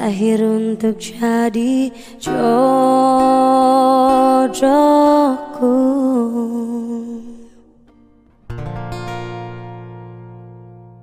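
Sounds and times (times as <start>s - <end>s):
woman singing a pop ballad: 0.0s - 7.7s.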